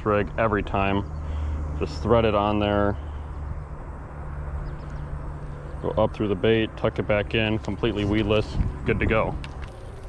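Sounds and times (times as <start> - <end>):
distant motor humming: 0.0 - 10.0
faint outdoor background noise: 0.0 - 10.0.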